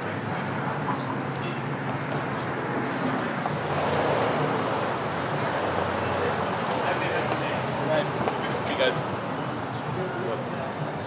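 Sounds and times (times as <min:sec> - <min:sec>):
outdoor rushing noise: 0:00.0 - 0:11.0.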